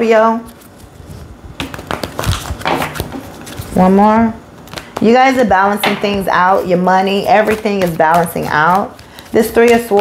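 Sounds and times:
cards being shuffled: 0.4 - 3.9, 7.1 - 10.0.

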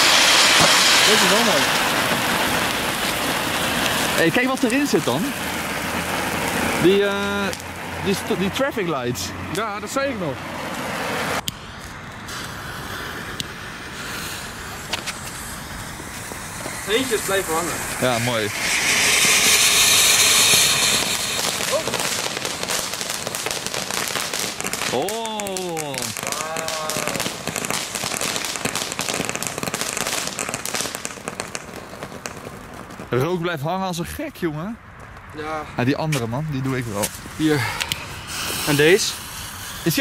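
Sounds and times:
firework pops: 0.0 - 7.7, 10.7 - 33.3, 37.0 - 40.0
firework sparks hissing: 0.0 - 33.4, 36.7 - 40.0.

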